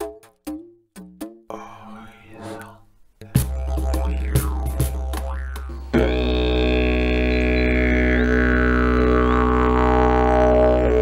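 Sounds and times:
didgeridoo drone: 3.4s - 11.0s.

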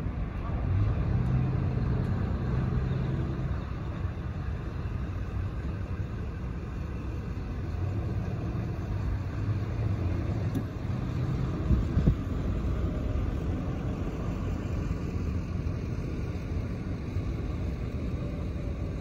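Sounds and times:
car engine and tyres rumbling: 0.0s - 19.0s.

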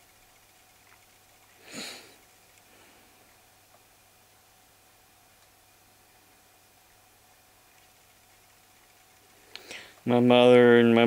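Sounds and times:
sniff through the nose: 1.6s - 2.2s.

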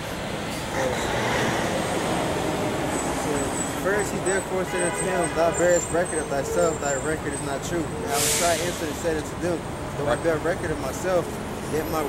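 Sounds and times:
passing vehicles: 0.0s - 12.0s.

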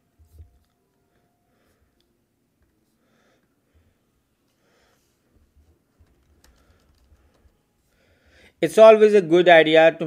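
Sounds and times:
faint keyboard typing: 5.4s - 7.7s.

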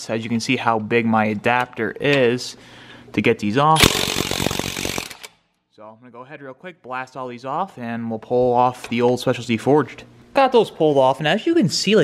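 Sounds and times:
impact wrench rattling: 3.8s - 5.4s.

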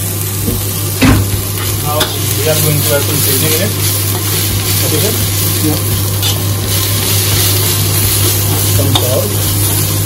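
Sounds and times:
steady low hum: 0.0s - 10.0s
vegetables sizzling in a wok: 0.0s - 10.0s
spatula tossing in a wok: 1.5s - 10.0s.

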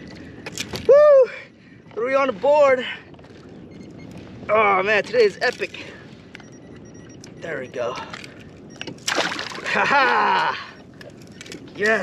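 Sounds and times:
man whooping: 0.9s - 1.4s.

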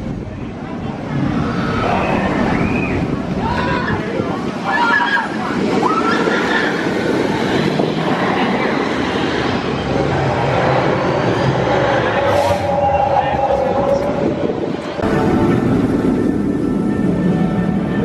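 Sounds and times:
crowd voices: 0.0s - 18.0s
roller coaster train on track: 0.0s - 18.0s.

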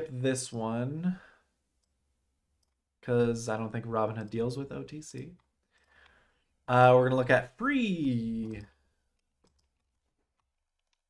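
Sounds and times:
faint computer mouse clicks: 8.4s - 11.0s.

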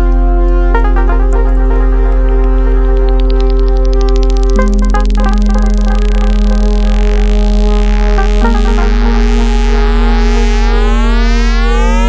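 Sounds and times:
synthesized electronic music: 0.0s - 12.0s.

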